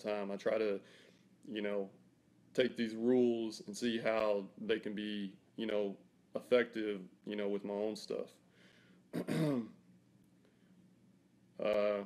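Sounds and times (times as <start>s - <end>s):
man clearing throat: 9.2s - 9.8s.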